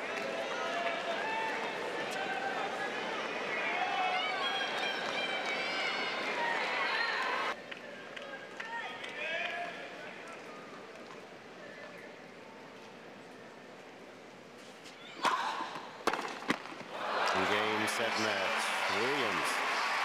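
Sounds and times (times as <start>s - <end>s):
crowd cheering and applause: 16.9s - 20.0s.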